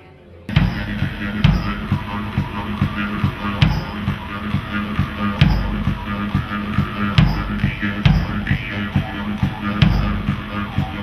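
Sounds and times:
bass drum steady beat: 0.5 - 11.0
droning mouth instrument: 0.5 - 11.0.

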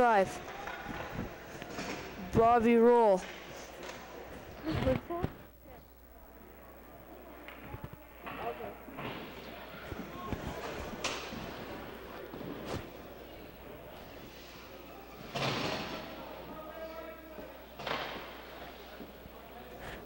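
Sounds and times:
faint players' voices: 0.0 - 20.0.

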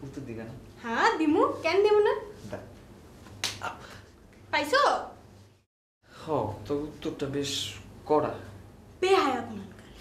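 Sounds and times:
hand slapping face: 3.2 - 3.8.

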